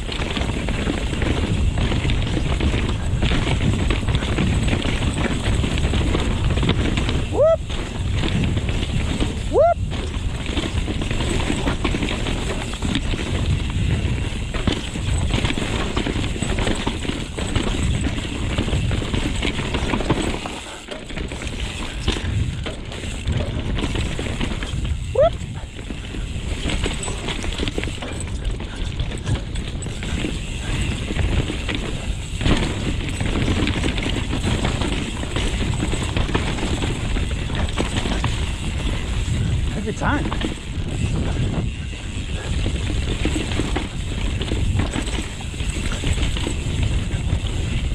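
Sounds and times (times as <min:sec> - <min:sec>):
mountain bike rumbling over rough dirt: 0:00.0 - 0:47.9.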